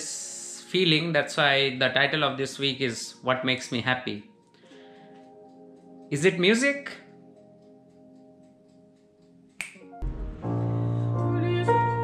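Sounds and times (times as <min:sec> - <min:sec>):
piano playing sustained chords: 0:00.0 - 0:12.0.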